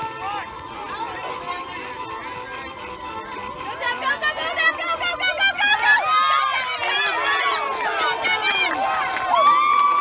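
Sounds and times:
spectators shouting and cheering: 0:00.0 - 0:02.6, 0:03.2 - 0:10.0.

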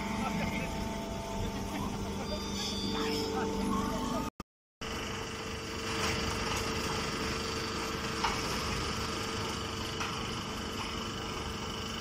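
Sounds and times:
faint high whine: 0:00.0 - 0:04.3
machinery humming steadily: 0:00.0 - 0:12.0.

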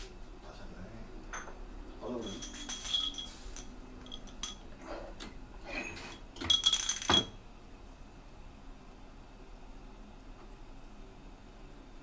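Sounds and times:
bottles rattling: 0:02.2 - 0:04.6, 0:05.9 - 0:07.4
glass bottles clinking: 0:02.2 - 0:04.8, 0:05.8 - 0:07.4.

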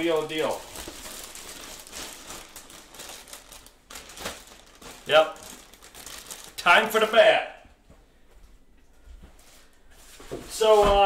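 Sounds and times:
plastic bag rustling: 0:00.0 - 0:07.3.

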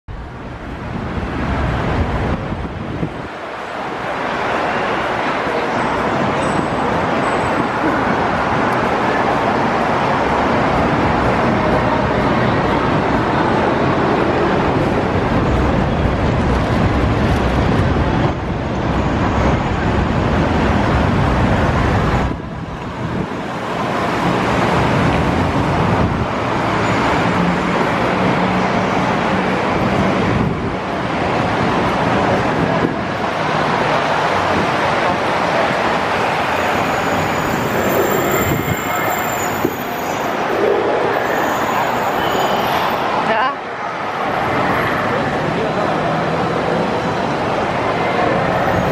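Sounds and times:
road traffic noise: 0:00.1 - 0:48.9.

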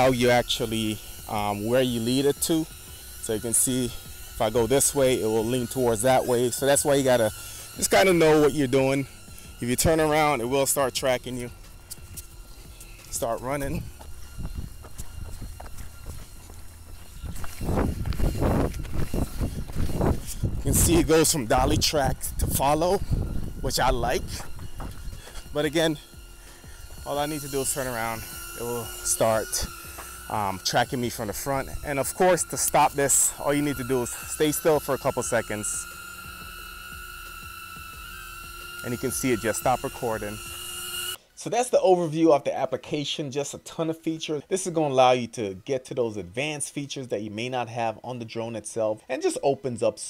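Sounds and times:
drone propellers humming: 0:00.0 - 0:41.2
steady low rumble: 0:08.5 - 0:34.4
running footsteps on gravel: 0:11.1 - 0:38.0.

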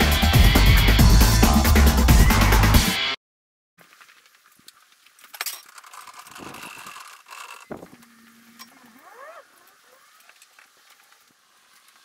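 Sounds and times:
trolley rolling on concrete: 0:05.4 - 0:07.7
short rising squeaks: 0:05.7 - 0:10.4.

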